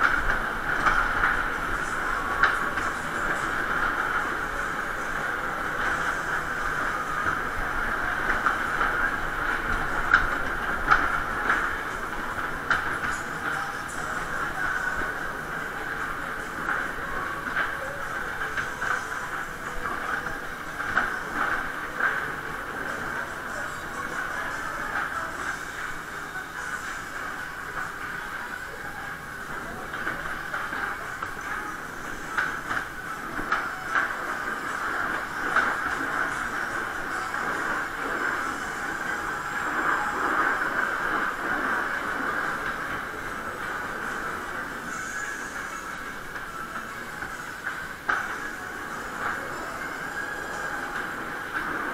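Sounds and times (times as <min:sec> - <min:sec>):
fairground ride rumbling: 0:00.0 - 0:51.9.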